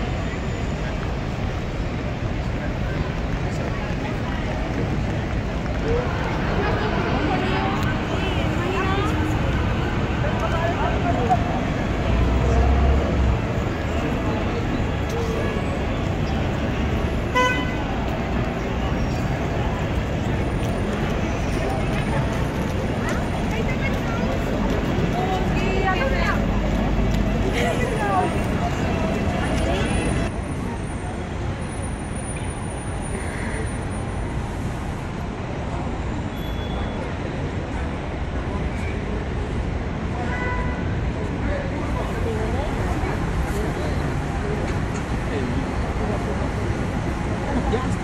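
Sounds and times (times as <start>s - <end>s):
city traffic: 0.0s - 48.0s
crowd noise: 0.0s - 48.0s
faint voices of passers-by: 0.0s - 48.0s
vehicle horn toot: 17.3s - 17.8s.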